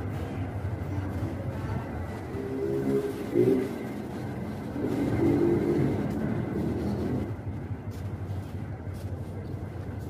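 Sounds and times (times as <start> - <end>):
bus engine rumbling: 0.0 - 10.0.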